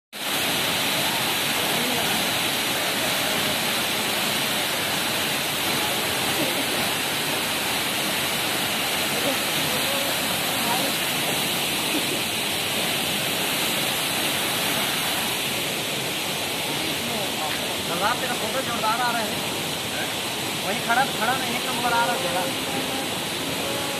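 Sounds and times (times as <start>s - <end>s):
waterfall rushing: 0.2s - 23.9s.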